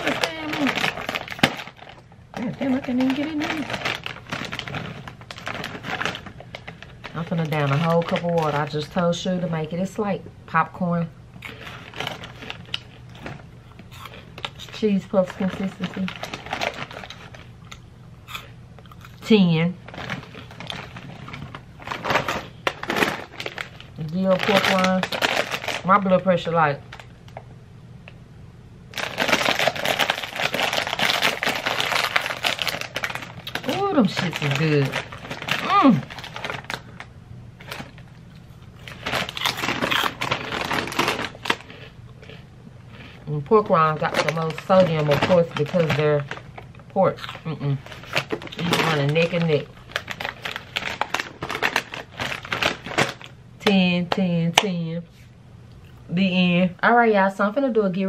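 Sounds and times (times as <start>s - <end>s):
chewing puffed snack crunches: 0.0s - 8.9s, 11.4s - 19.3s, 19.9s - 25.9s, 28.9s - 53.4s
crunchy snack chewing: 11.4s - 14.6s, 15.7s - 19.2s, 37.6s - 43.2s.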